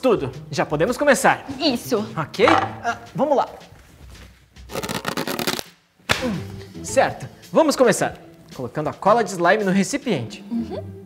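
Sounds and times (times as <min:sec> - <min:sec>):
glove crackling rustle: 0:03.8 - 0:05.8.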